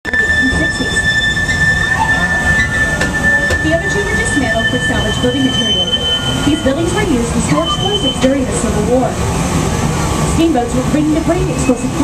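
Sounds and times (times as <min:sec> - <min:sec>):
train low rumble: 0:00.0 - 0:12.0
train wheel squeal: 0:00.1 - 0:08.4.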